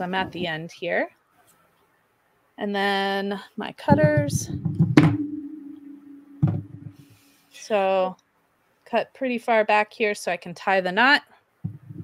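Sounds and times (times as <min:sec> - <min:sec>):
soft dull knock: 0:03.9 - 0:05.3, 0:06.4 - 0:07.0, 0:11.6 - 0:12.0
low ringing tone: 0:05.1 - 0:07.1.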